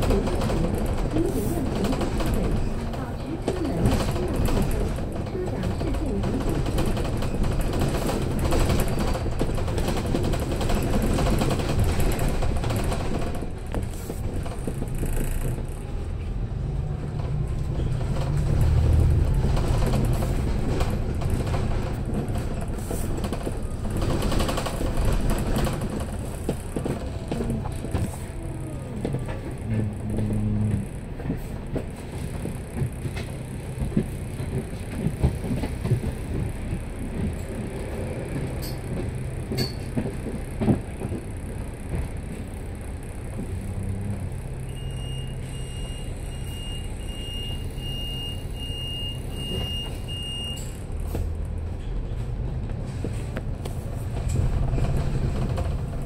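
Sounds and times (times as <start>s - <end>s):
body rattles and knocks: 0.0s - 15.9s, 17.1s - 42.6s, 52.2s - 56.0s
bus engine running: 0.0s - 56.0s.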